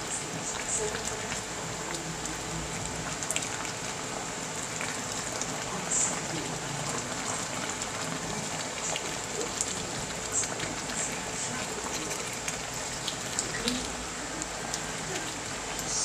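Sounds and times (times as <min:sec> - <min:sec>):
stew bubbling in a pan: 0:00.0 - 0:16.0.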